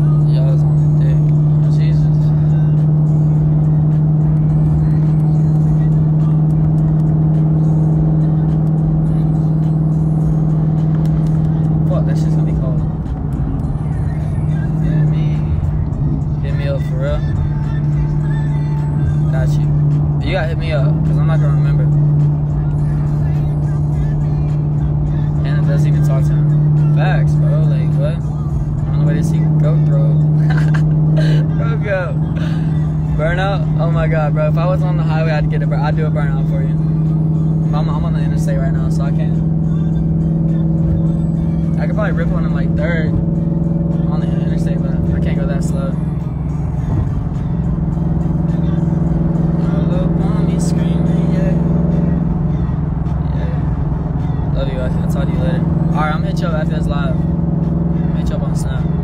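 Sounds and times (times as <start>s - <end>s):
car engine and road drone: 0.0s - 59.0s
music with singing voice: 0.0s - 59.0s.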